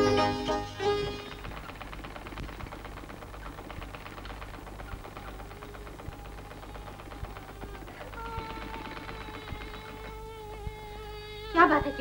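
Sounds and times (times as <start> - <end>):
sewing machine clattering: 1.0 - 10.2.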